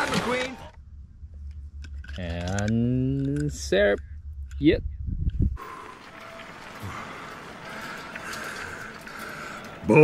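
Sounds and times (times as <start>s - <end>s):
wind buffeting microphone: 4.2s - 8.3s.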